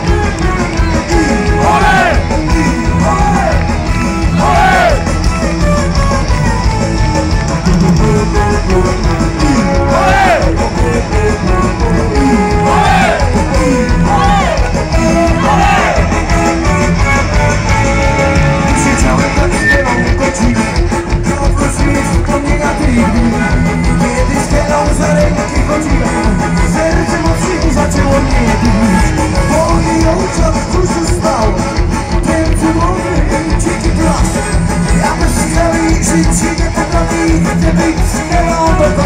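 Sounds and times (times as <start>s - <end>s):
live rock band playing: 0.0s - 39.0s.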